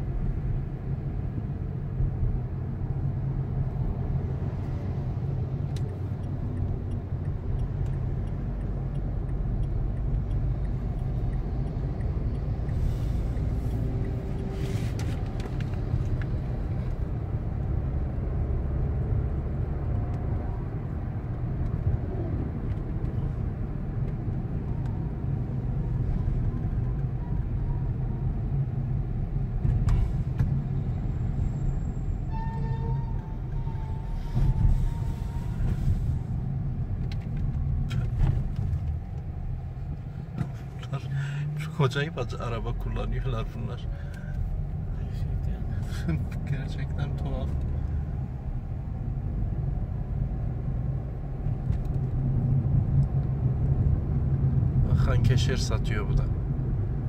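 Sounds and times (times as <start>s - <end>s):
car engine and road noise: 0.0s - 57.0s.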